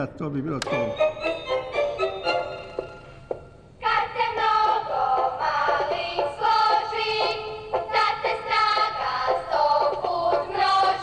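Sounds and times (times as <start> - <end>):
bright instrumental notes from small device: 0.6 - 3.6.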